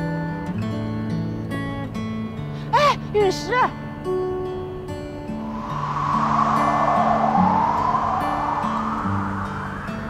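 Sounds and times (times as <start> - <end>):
broad whooshing: 5.3 - 10.0.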